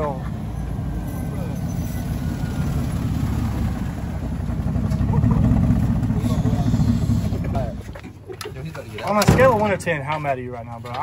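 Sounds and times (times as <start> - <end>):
pickup truck engine rumble: 0.0 - 10.4.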